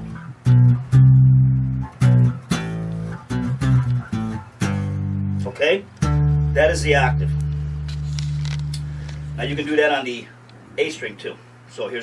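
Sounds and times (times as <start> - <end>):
electric bass octave plucks: 0.0 - 10.1.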